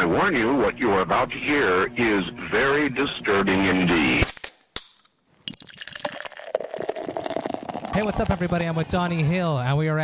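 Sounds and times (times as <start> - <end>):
fizzing liquid: 5.4 - 9.4.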